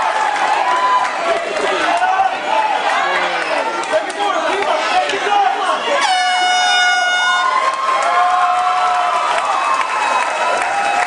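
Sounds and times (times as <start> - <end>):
crowd shouting: 0.0 - 11.0
air horn blast: 6.0 - 7.6.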